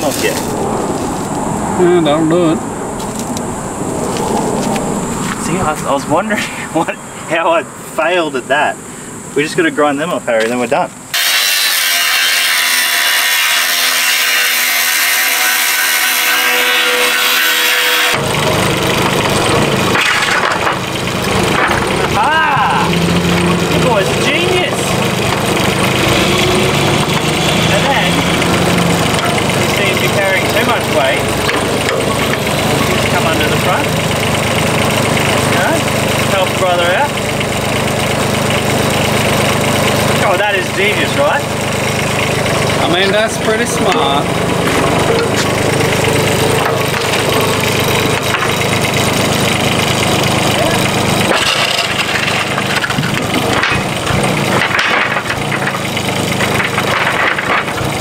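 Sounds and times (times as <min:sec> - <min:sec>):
angle grinder grinding steel: 0:00.0 - 0:01.3, 0:11.1 - 0:58.0
excavator engine running: 0:00.0 - 0:07.4, 0:18.1 - 0:58.0.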